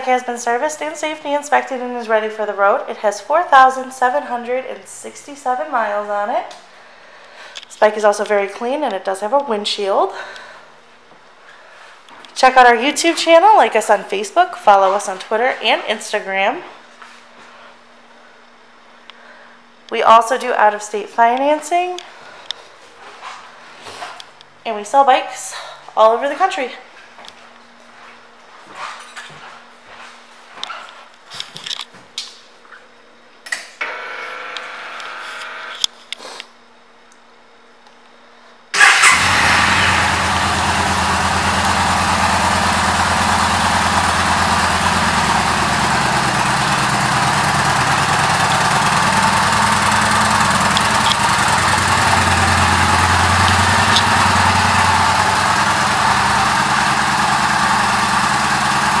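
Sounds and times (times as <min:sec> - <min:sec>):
motorcycle engine idling: 0:38.8 - 0:59.0.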